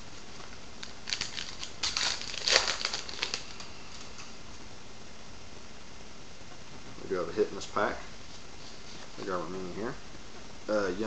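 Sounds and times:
wrapper tearing and crinkling: 0.8 - 4.2.

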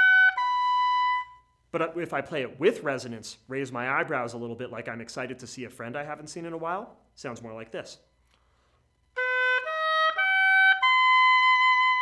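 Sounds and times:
oboe playing an arpeggio: 0.0 - 1.5, 9.2 - 12.0.

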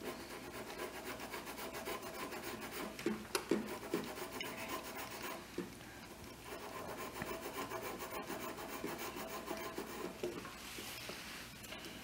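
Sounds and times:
drawing stick scratching paper: 0.0 - 5.4, 6.4 - 10.3.

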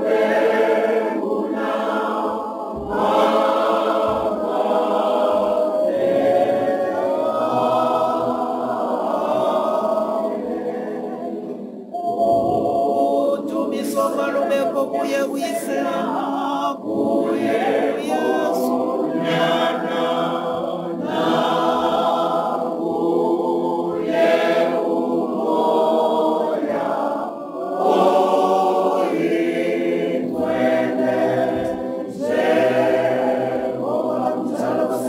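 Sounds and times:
choir singing a cappella: 0.0 - 35.0.

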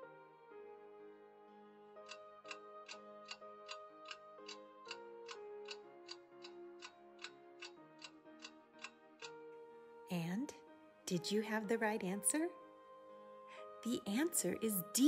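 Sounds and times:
soft background music chords: 0.0 - 15.0
clock ticking: 2.1 - 9.4.

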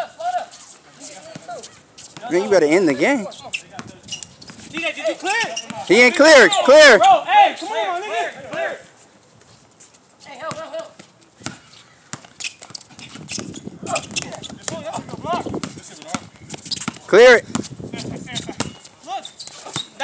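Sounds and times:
basketball bouncing on court: 10.5 - 17.7, 18.3 - 18.9.

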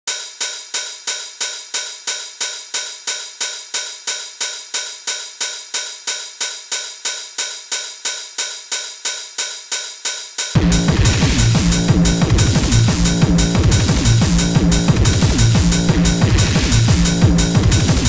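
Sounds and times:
metallic hi-hat-like percussion: 0.1 - 18.0.

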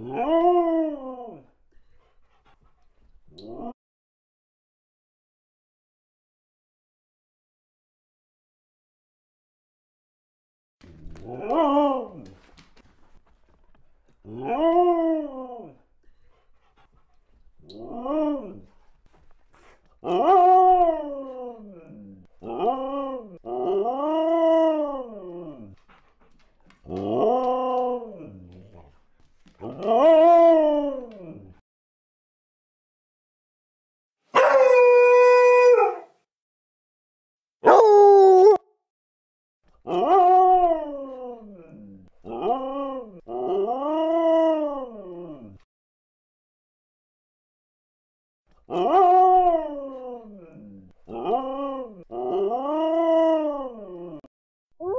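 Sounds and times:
dog howling: 0.0 - 1.5, 14.2 - 15.8, 17.7 - 18.8, 20.0 - 25.8, 26.8 - 28.8, 29.6 - 31.6, 34.4 - 36.2, 37.6 - 38.6, 39.9 - 45.6, 48.7 - 54.9.

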